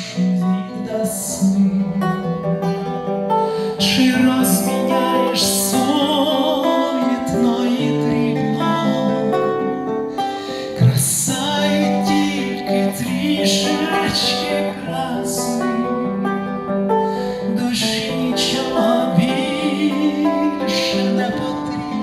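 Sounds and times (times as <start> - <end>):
classical guitar strumming: 0.0 - 22.0
man singing: 0.0 - 22.0.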